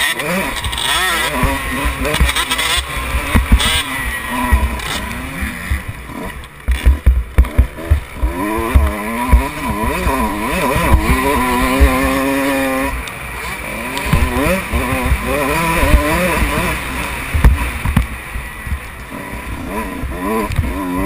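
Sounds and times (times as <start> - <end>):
motorbike engine revving: 0.0 - 21.0.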